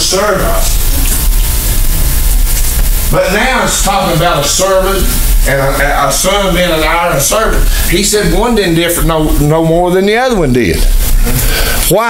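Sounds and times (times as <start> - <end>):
steady loud hiss: 0.0 - 12.0.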